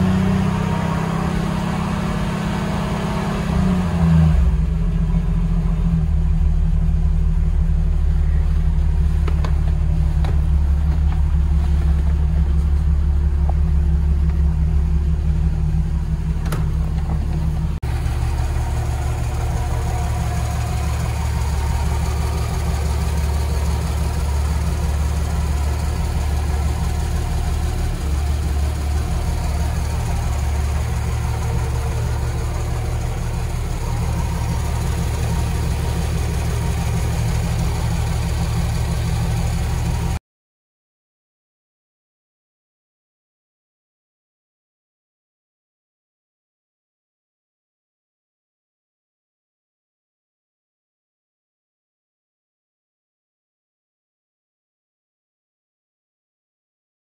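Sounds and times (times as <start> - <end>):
car engine idling: 0.0 - 40.2.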